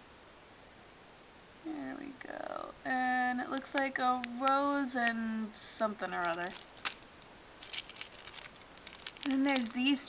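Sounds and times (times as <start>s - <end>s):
plastic bags crinkling: 6.1s - 10.0s.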